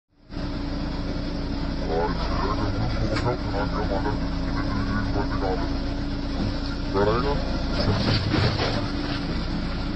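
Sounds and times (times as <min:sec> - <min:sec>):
diesel engine running: 0:00.1 - 0:09.9.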